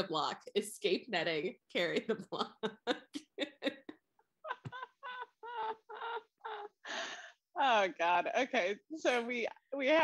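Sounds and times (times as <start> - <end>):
woman laughing: 2.1 - 7.2.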